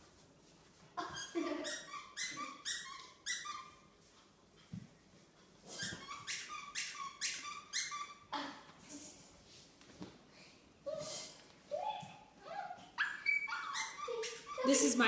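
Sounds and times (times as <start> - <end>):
puppy yapping: 13.0 - 14.9.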